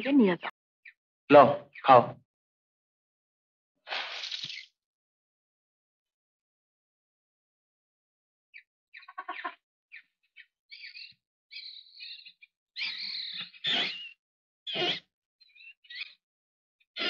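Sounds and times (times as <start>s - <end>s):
birds chirping: 0.0s - 2.2s, 8.5s - 16.2s.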